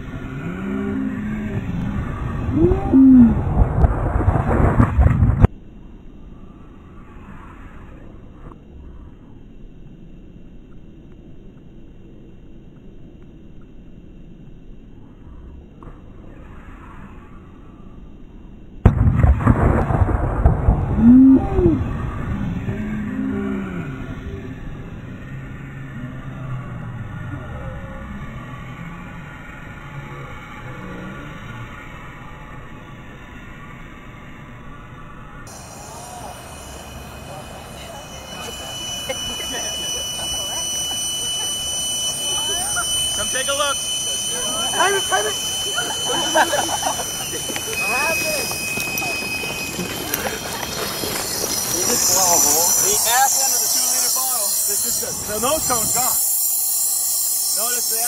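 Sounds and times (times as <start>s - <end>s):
excited voices: 0.0s - 3.6s, 21.0s - 25.4s, 35.5s - 56.3s.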